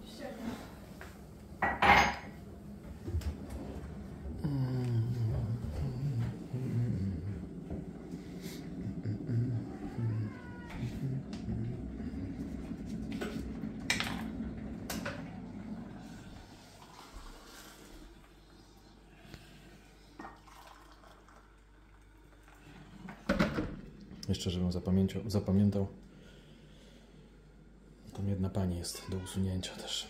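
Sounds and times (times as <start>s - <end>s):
cat meowing: 9.6s - 11.1s.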